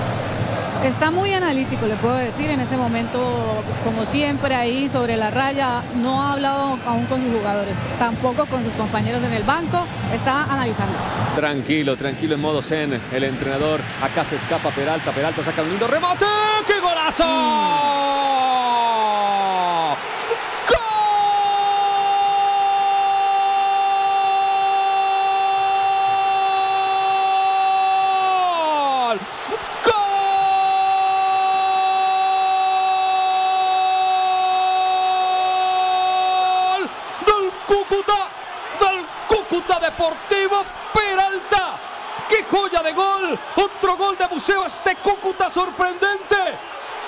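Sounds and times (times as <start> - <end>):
commentator shouting: 15.9 - 46.6.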